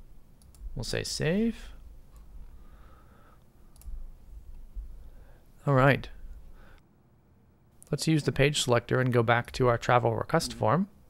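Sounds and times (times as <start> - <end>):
low background rumble: 1.6 - 6.8
computer mouse click: 3.7 - 4.0.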